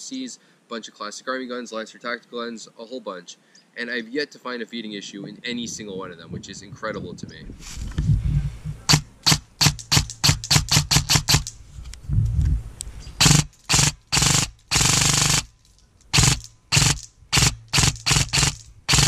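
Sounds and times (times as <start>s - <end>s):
airsoft rifle firing: 8.9s - 11.5s, 13.2s - 15.5s, 16.1s - 19.0s.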